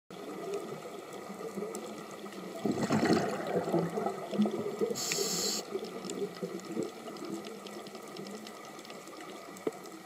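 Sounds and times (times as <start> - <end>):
muffled underwater hiss: 0.1 - 10.0
faint clicks: 4.2 - 10.0.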